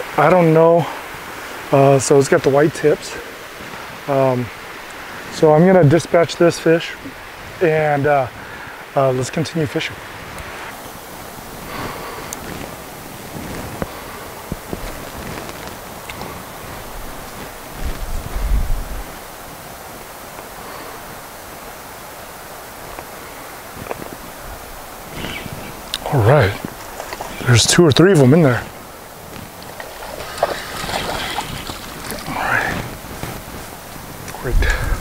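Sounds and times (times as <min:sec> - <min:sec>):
flowing creek water: 0:00.0 - 0:35.0
wind buffeting microphone: 0:10.0 - 0:20.1, 0:22.8 - 0:35.0
wind rushing: 0:16.6 - 0:19.6, 0:28.5 - 0:35.0.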